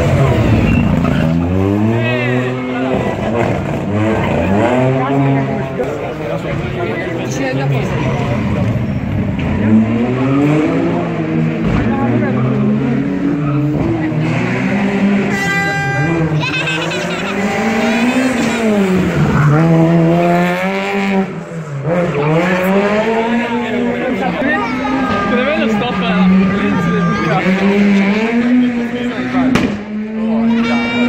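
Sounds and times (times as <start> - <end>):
rally car engine revving: 0.0 - 31.0
tyres squealing: 15.3 - 18.8.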